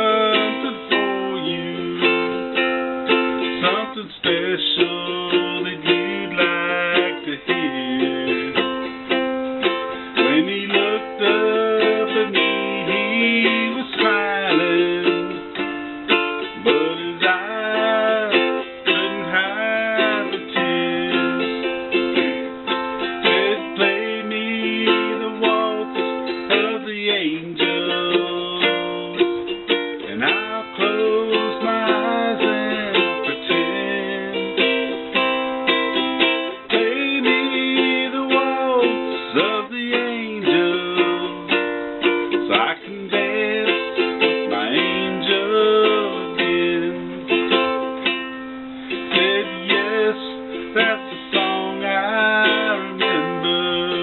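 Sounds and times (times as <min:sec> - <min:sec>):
man singing: 0:00.0 - 0:02.7, 0:03.4 - 0:54.0
ukulele strumming chords: 0:00.0 - 0:54.0.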